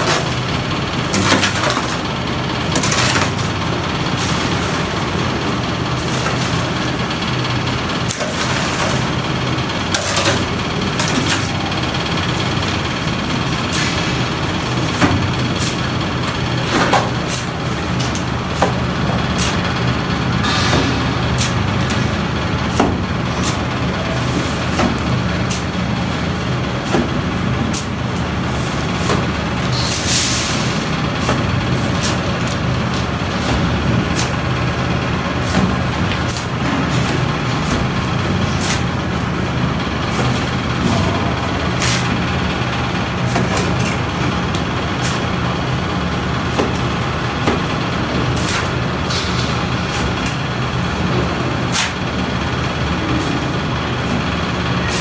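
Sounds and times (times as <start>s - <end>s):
machine engine drone: 0.0s - 55.0s.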